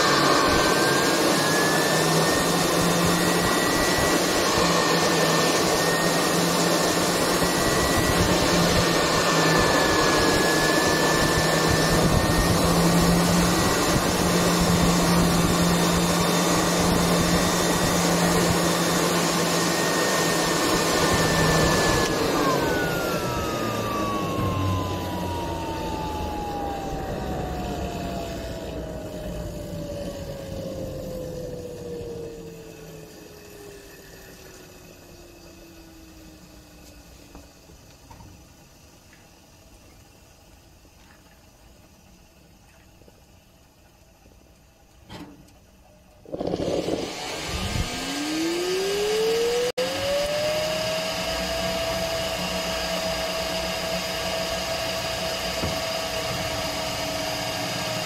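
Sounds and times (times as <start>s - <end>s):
jet engine rushing air: 0.0s - 34.3s, 46.3s - 58.0s
high turbine whine: 0.0s - 42.6s, 45.9s - 58.0s
low hum: 2.2s - 36.9s.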